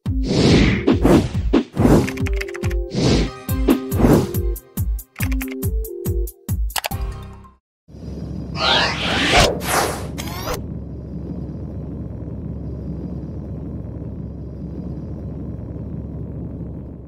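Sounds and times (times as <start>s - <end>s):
low rumbling drone: 7.9s - 17.0s
whoosh sound effects: 8.6s - 10.6s.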